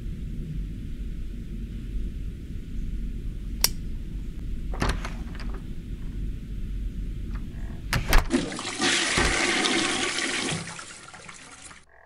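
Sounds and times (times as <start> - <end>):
toilet flush clicks: 7.4 - 11.2
toilet water rushing: 8.2 - 11.9.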